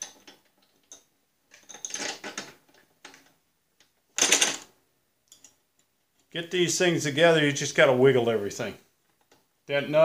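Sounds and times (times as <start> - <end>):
metal parts scraping and clicking: 0.0 - 3.3.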